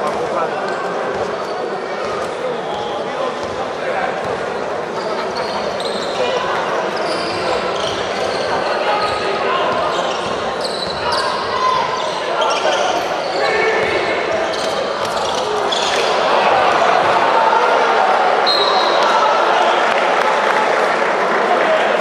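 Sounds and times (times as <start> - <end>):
crowd murmur: 0.0 - 22.0
players calling: 4.2 - 22.0.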